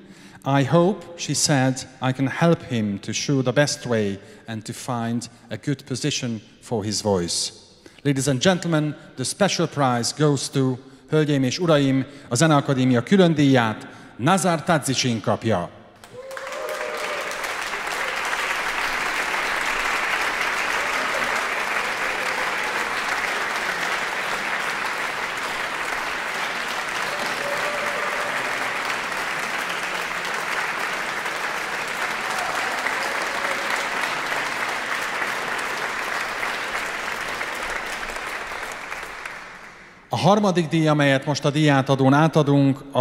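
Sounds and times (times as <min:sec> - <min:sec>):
audience applauding: 0:16.0 - 0:40.0.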